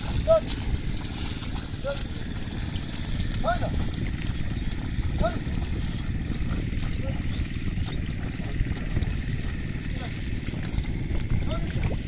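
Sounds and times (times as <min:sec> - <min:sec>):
sloshing and squelching mud: 0:00.0 - 0:12.0
person calling to oxen: 0:00.2 - 0:00.6, 0:03.4 - 0:03.8, 0:05.1 - 0:05.6.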